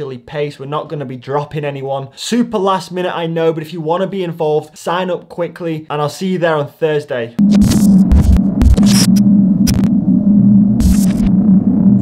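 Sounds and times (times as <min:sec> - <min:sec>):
throbbing low electronic hum: 0:07.4 - 0:12.0.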